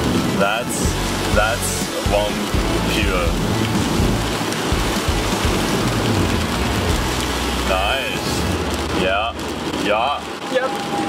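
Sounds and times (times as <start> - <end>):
rain on a moving car: 0.0 - 11.0
tyres on wet road: 0.0 - 11.0.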